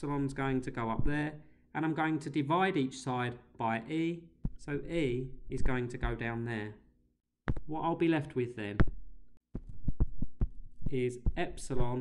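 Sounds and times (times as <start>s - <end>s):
stylus tapping on tablet screen: 7.5s - 7.7s, 8.8s - 12.0s.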